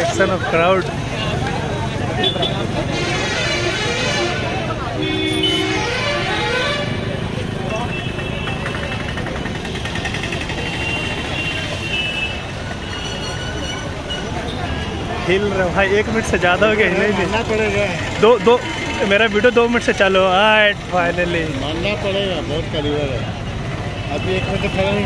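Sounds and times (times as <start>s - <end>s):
road traffic passing: 0.0s - 25.0s
vehicle horns tooting: 2.2s - 10.0s, 10.6s - 15.1s.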